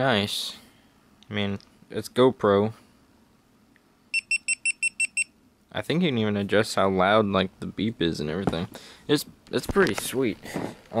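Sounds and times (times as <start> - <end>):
short high beeps: 4.1 - 5.3.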